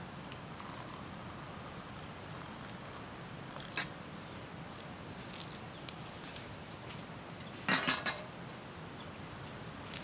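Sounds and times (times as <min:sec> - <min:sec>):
metal cookware clattering: 0:07.7 - 0:08.3.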